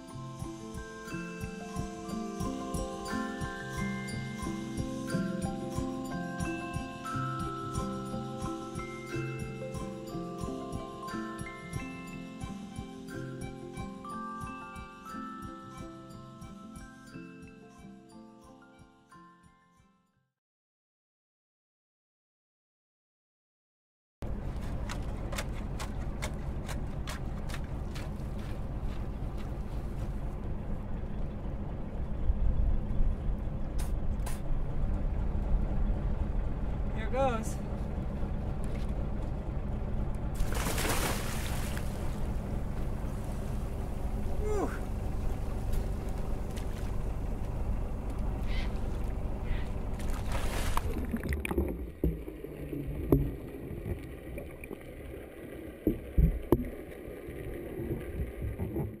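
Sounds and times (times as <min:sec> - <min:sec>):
boat engine idling: 0:24.2 - 0:51.2
splash: 0:40.4 - 0:42.3, 0:50.0 - 0:59.0
muffled underwater churning water: 0:41.4 - 0:59.0
underwater knocks and clicks: 0:50.8 - 0:54.8, 0:55.8 - 0:57.0, 0:57.9 - 0:59.0.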